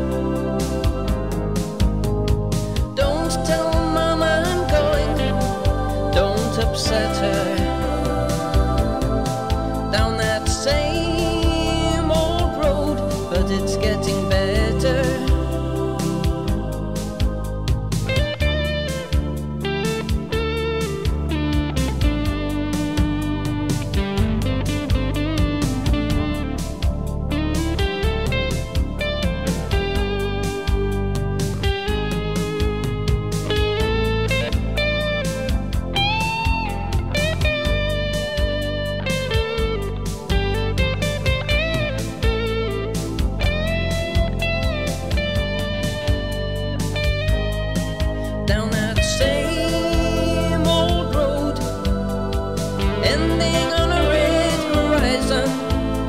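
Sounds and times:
bass: 0:00.0 - 0:56.0
steady drum beat: 0:13.2 - 0:21.2, 0:43.0 - 0:56.0
electric guitar solo: 0:18.1 - 0:26.6.

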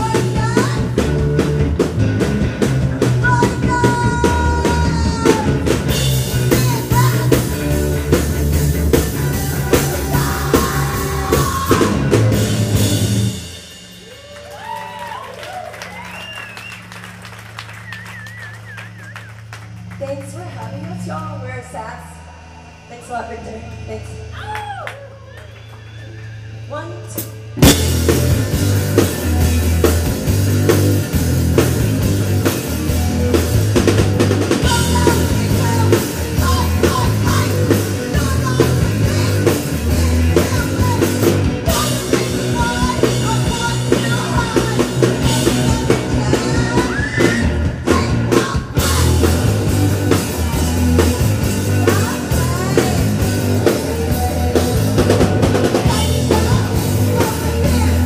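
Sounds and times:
bass guitar: 0:00.0 - 0:58.0
drum kit: 0:00.0 - 0:58.0
electric guitar: 0:00.0 - 0:58.0.

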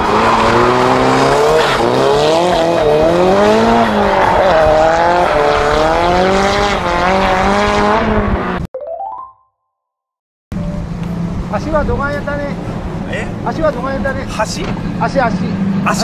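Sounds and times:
car engine revving hard: 0:00.0 - 0:08.6.

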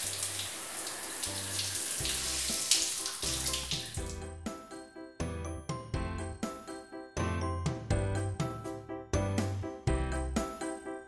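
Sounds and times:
shower running: 0:00.0 - 0:04.2.

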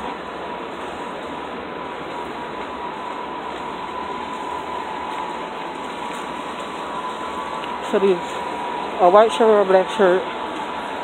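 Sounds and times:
city traffic: 0:00.0 - 0:11.0
high-pitched whine: 0:00.0 - 0:11.0.

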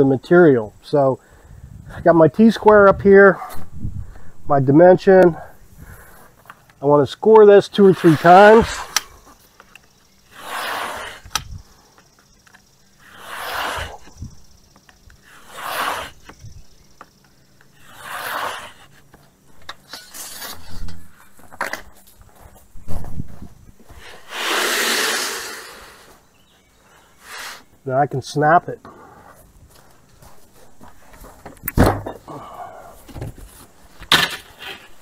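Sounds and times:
knife scraping along board: 0:07.8 - 0:08.8, 0:10.3 - 0:11.3, 0:13.0 - 0:14.1, 0:15.3 - 0:16.4, 0:17.8 - 0:19.0.

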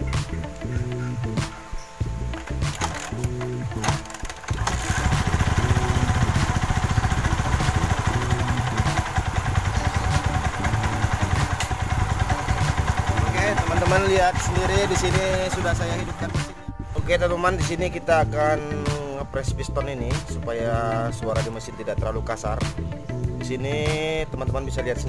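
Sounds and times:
intro music: 0:00.0 - 0:25.0
motorcycle engine knocking: 0:04.0 - 0:16.6.

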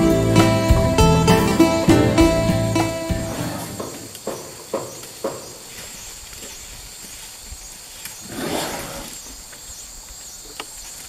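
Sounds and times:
plucked guitar note: 0:00.0 - 0:03.8
high-pitched insect chorus: 0:03.3 - 0:11.0.

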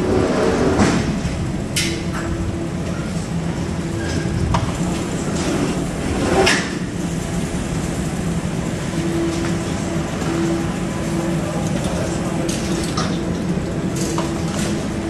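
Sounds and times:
echoing parking hall ambience: 0:00.0 - 0:15.0
steady hum: 0:00.0 - 0:15.0.

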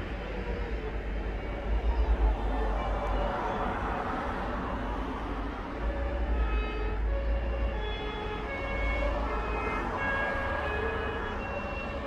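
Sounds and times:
distant two-tone siren: 0:00.0 - 0:12.0.

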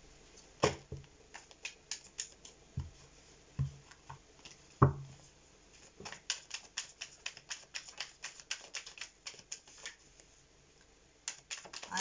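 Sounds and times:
cards being shuffled: 0:06.0 - 0:10.0, 0:11.3 - 0:12.0.

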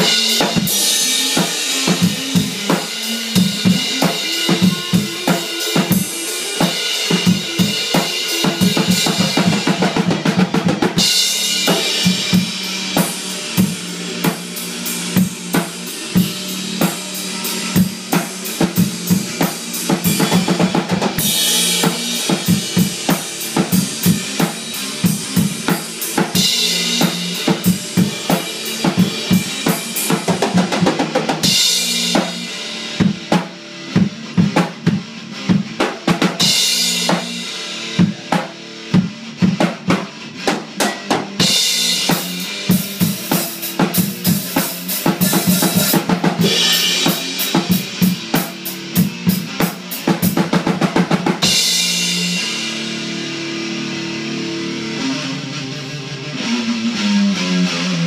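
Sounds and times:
drum kit playing: 0:00.0 - 0:55.4
electric guitar playing: 0:00.0 - 0:58.0.

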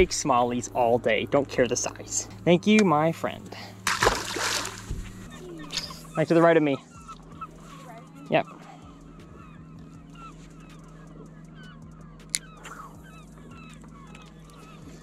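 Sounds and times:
low hum: 0:00.0 - 0:08.1.

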